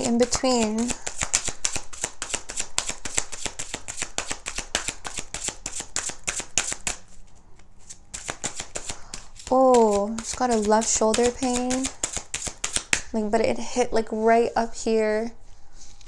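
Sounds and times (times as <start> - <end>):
cards being shuffled: 0.0 - 13.1.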